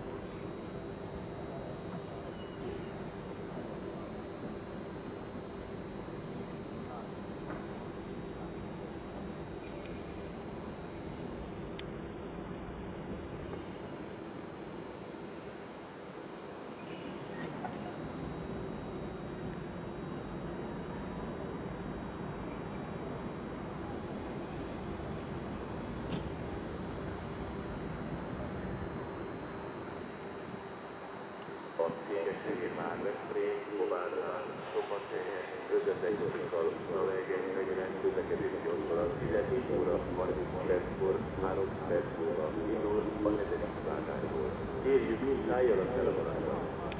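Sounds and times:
faint steady tone: 0.0 - 46.9.

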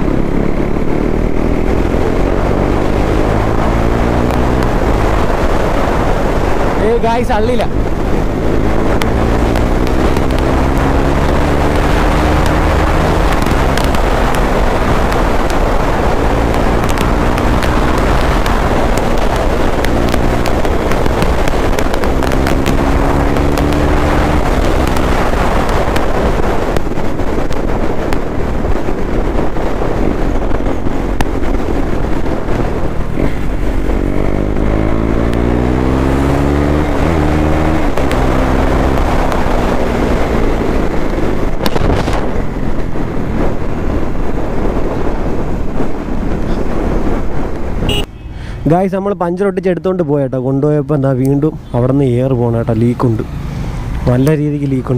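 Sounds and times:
motorcycle engine revving: 0.0 - 48.6, 50.9 - 54.9
wind rush on microphone: 0.0 - 54.9.

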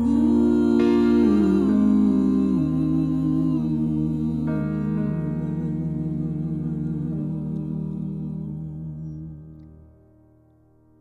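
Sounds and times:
voices humming in harmony: 0.0 - 10.0.

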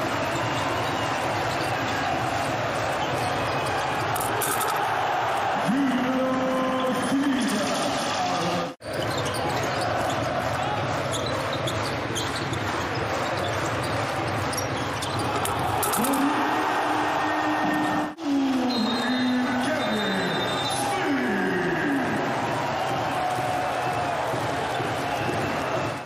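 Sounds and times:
crowd noise: 0.0 - 26.0.

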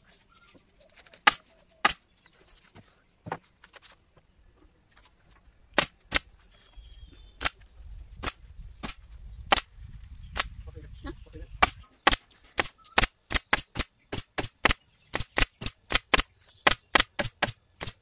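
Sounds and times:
pneumatic stapler shots: 11.6 - 18.0.

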